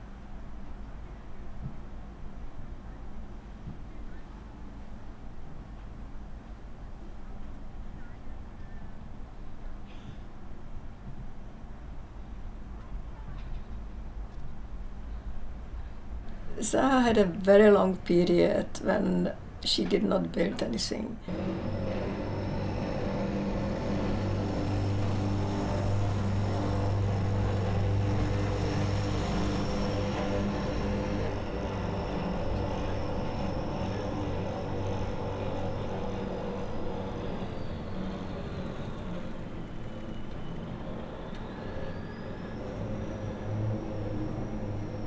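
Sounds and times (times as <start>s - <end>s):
low mechanical drone: 10.6s - 45.0s
thin high whine: 20.3s - 45.0s.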